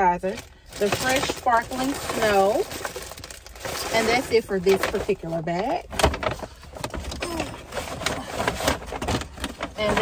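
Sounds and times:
paper bags rustling: 0.0s - 10.0s.

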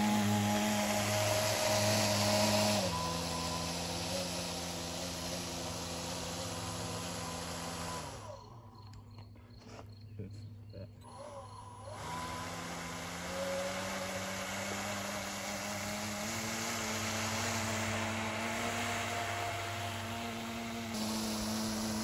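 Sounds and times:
model airboat motor whining: 0.0s - 9.1s, 11.0s - 22.0s.

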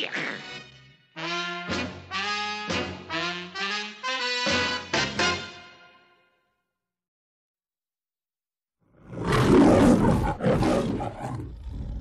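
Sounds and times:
lion roaring: 9.0s - 12.0s.

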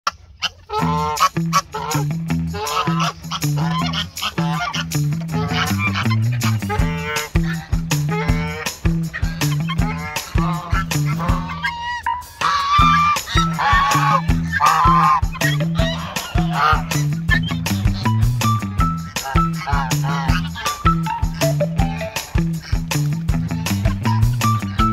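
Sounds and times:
goose honking: 0.1s - 24.9s
background music with bass line: 0.7s - 24.9s.

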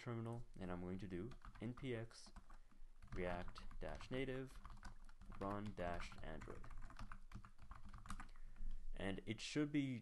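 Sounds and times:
keyboard typing: 0.3s - 8.8s.

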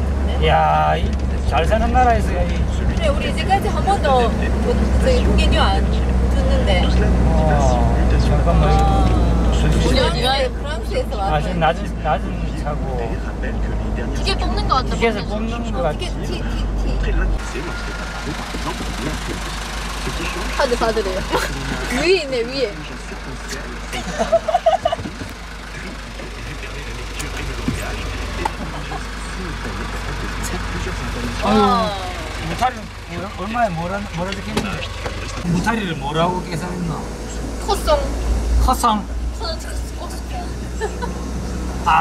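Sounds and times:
bus engine and tyres droning: 0.0s - 42.0s
people talking: 0.2s - 42.0s
burst of laughter: 24.0s - 25.0s.

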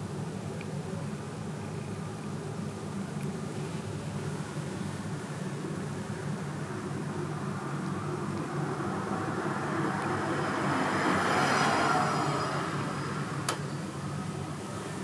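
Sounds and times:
steady low hum: 0.0s - 15.0s
vehicle passing by: 7.4s - 13.5s.

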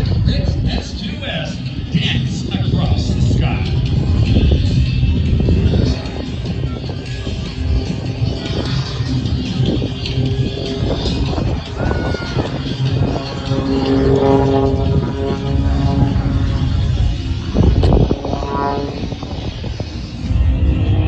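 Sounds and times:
propeller airplane engine: 0.0s - 21.0s
loudspeaker music: 0.1s - 21.0s.

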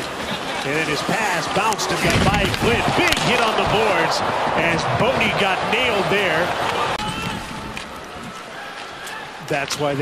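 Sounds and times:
crowd noise: 0.0s - 10.0s
hockey sticks and puck clicking: 1.5s - 3.5s.

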